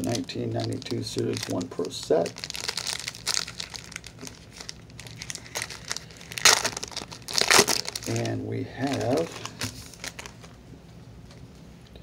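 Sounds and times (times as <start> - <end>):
wrapper crinkling and tearing: 0.0 - 10.5.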